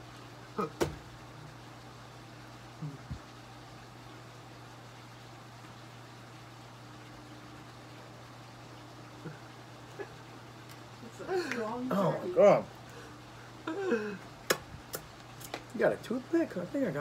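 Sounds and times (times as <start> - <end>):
short low vocal sound: 2.8 - 3.3.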